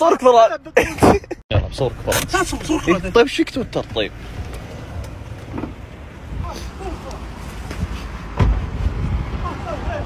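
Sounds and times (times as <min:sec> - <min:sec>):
car door opening: 0:03.7 - 0:06.0, 0:07.6 - 0:08.9.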